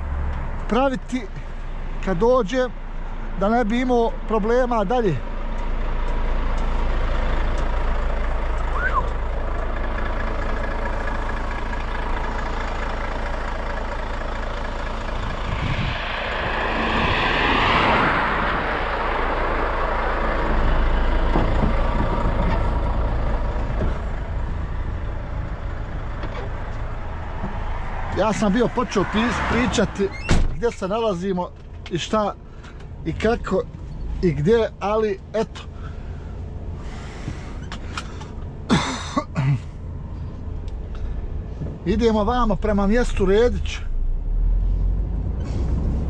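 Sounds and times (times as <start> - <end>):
diesel truck engine idling: 0.0 - 44.9
vehicle passing: 5.4 - 30.2.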